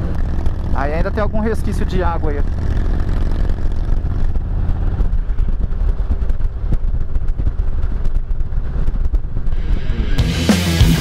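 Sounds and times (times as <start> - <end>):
motorcycle engine running: 0.0 - 11.0
wind noise on microphone: 2.1 - 10.4.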